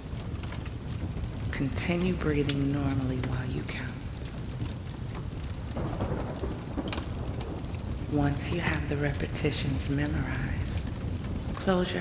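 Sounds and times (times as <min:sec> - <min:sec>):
low rumble of thunder: 0:00.0 - 0:12.0
steady rain: 0:00.0 - 0:12.0.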